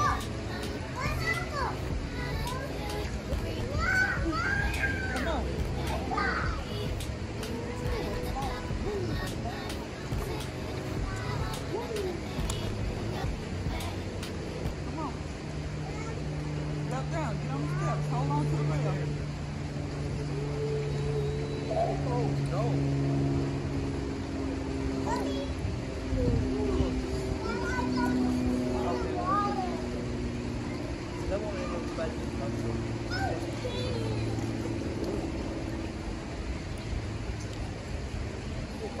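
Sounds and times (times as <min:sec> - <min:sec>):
children playing and calling out: 0:00.0 - 0:16.8, 0:20.0 - 0:22.5, 0:24.8 - 0:36.6
low hum: 0:00.0 - 0:39.0
voices: 0:00.0 - 0:39.0.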